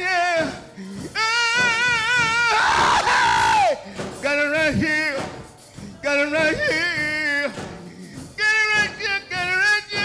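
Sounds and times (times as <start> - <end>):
man singing gospel: 0.0 - 10.0
shouting: 1.2 - 3.8.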